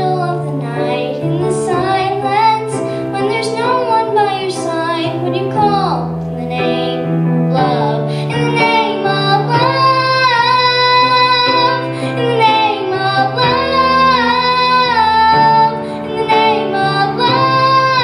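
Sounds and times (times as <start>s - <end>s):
girl singing into microphone: 0.0s - 18.0s
instrumental backing of chords: 0.0s - 18.0s.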